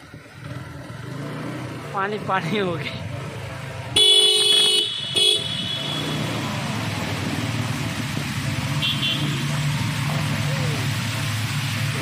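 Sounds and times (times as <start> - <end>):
motorcycle engine running: 0.0 - 12.0
vehicle horn honking: 4.0 - 6.3, 8.8 - 9.4.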